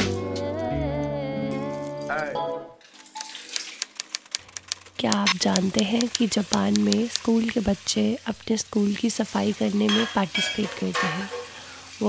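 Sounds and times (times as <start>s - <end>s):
sharp dry clicks: 3.1s - 7.6s.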